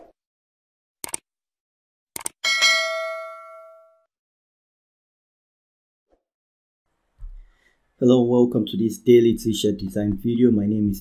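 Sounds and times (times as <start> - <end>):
notification bell ding: 2.4 - 4.1.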